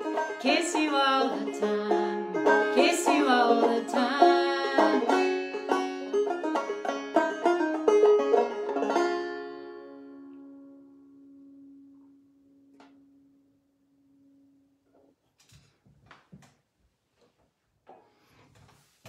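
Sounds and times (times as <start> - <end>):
banjo playing: 0.0 - 12.2.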